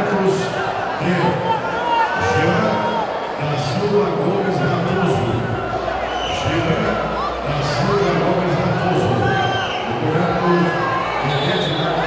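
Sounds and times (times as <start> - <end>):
crowd hum: 0.0 - 12.0
indistinct voices: 0.0 - 12.0.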